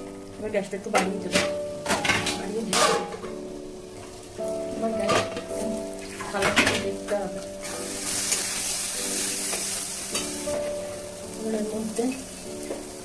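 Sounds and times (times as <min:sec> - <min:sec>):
food sizzling in a wok: 0:00.0 - 0:13.0
metal clanks against wok: 0:01.0 - 0:03.4.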